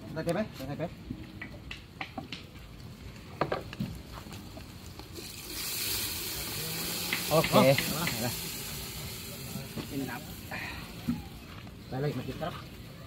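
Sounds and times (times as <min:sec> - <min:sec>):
steady high hiss: 0:00.0 - 0:13.0
wood fire crackling: 0:00.0 - 0:13.0.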